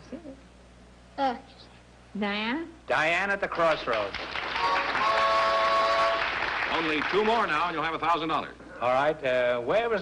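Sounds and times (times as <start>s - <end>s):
studio audience applauding: 3.4s - 8.2s.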